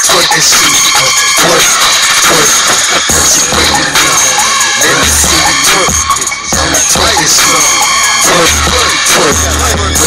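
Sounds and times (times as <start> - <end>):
hip hop beat: 0.0 - 10.0
rapping: 0.0 - 10.0.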